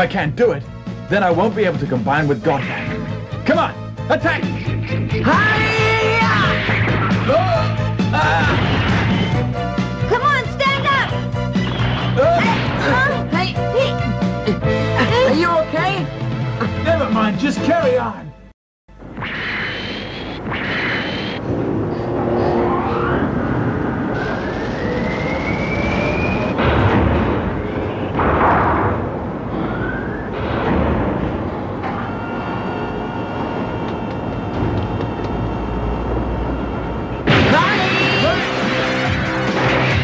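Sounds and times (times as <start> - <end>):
guitar: 0.8 - 18.2, 31.8 - 40.0
cartoon soundtrack music: 1.0 - 18.0, 37.3 - 40.0.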